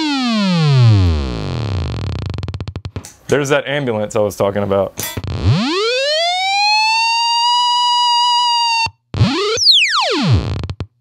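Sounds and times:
siren-like fuzz guitar tone: 0.0s - 2.8s, 5.2s - 10.8s.

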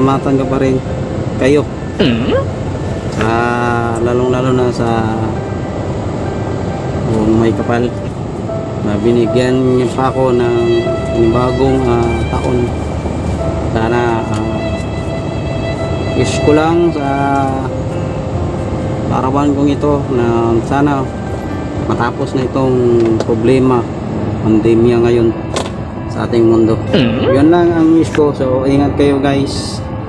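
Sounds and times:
engine and air conditioning hum: 0.0s - 30.0s
person hesitating in speech: 2.0s - 2.5s, 26.9s - 27.6s.

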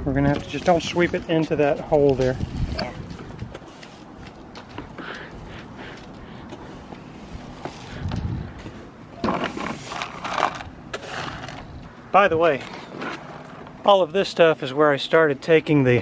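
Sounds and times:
broom sweeping: 6.7s - 8.0s, 9.4s - 11.6s
plastic pieces scraping and clicking: 9.2s - 11.7s.

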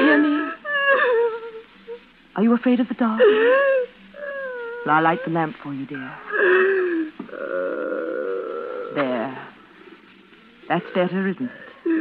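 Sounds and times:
woman moaning tearfully: 0.0s - 1.6s, 3.2s - 5.0s, 6.2s - 9.0s.

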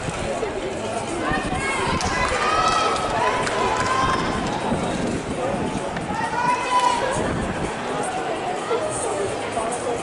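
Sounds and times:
spectators shouting encouragement: 1.2s - 4.7s.

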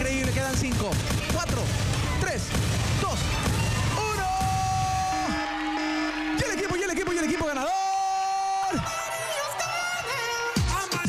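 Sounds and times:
background music: 0.0s - 11.0s
long drawn-out shouts: 3.3s - 10.9s.

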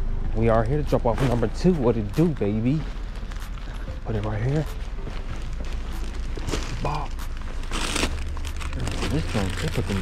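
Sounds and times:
steady low rumble: 0.0s - 10.0s
plastic bags rustling: 1.3s - 10.0s.

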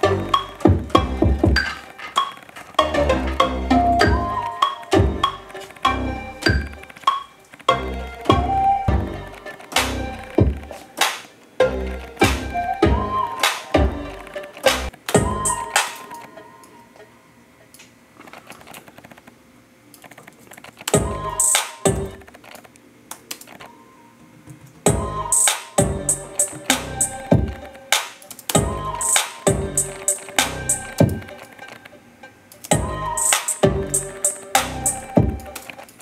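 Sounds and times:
hip-hop beat with bass kicks: 0.0s - 1.8s, 2.8s - 6.8s, 7.7s - 10.8s, 11.7s - 16.2s, 21.0s - 22.2s, 24.9s - 31.4s, 32.7s - 35.6s
synth melody: 0.0s - 11.0s, 11.6s - 17.4s, 21.0s - 22.3s, 24.9s - 36.0s.

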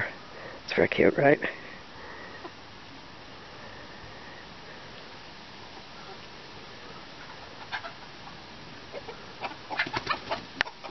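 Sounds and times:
faint background hiss: 0.0s - 10.9s
chickens clucking: 2.0s - 10.9s.

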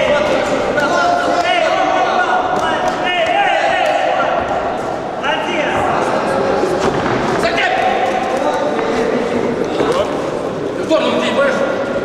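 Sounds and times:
people shouting: 0.0s - 5.8s.

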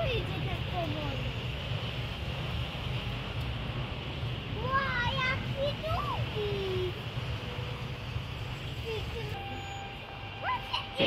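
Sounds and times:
child calling out: 10.4s - 11.0s.

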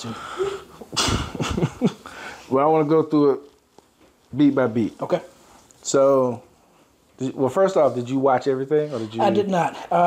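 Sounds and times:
man laughing breathily: 0.0s - 2.4s.

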